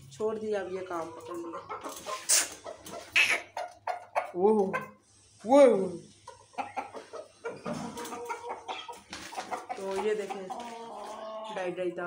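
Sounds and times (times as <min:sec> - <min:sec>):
rooster clucking: 0:00.9 - 0:05.0, 0:06.2 - 0:11.9.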